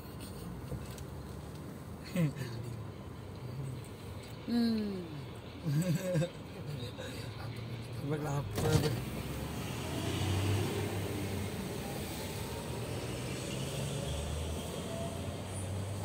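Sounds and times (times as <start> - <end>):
car engine hum: 0.0 - 16.0
road noise: 0.0 - 16.0.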